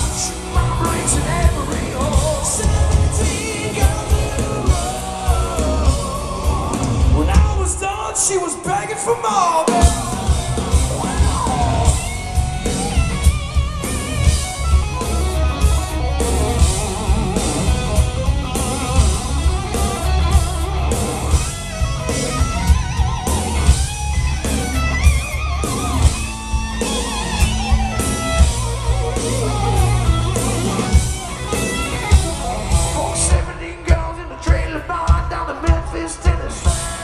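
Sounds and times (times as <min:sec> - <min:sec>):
electric guitar lead with bent notes: 0:00.0 - 0:07.8, 0:09.1 - 0:37.0
bass guitar: 0:00.0 - 0:08.0, 0:09.6 - 0:37.0
steady drum beat: 0:00.0 - 0:08.5, 0:09.6 - 0:37.0.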